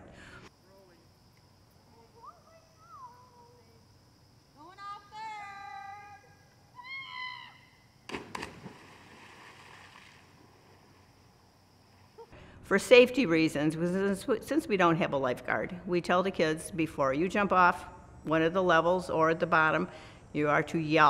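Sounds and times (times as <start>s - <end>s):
splash into water: 8.1s - 11.1s.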